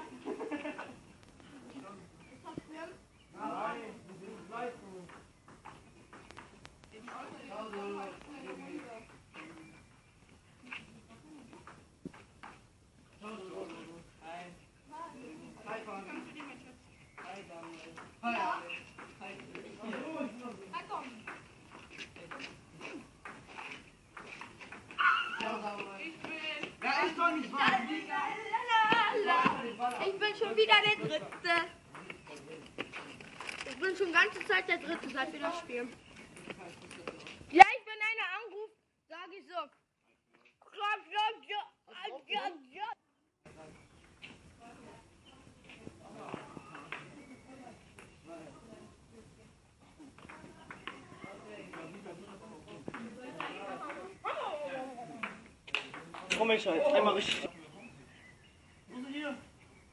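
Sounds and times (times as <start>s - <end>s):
chatter of voices: 43.5s - 59.5s.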